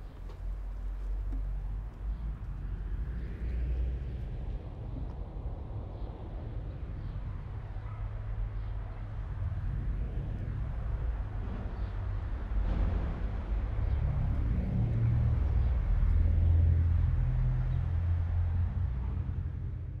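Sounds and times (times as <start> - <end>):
low outdoor rumble: 0.0 - 20.0.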